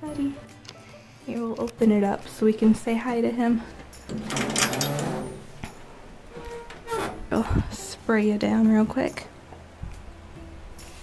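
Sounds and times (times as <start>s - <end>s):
enclosure door scraping: 4.1s - 5.6s, 6.3s - 7.4s.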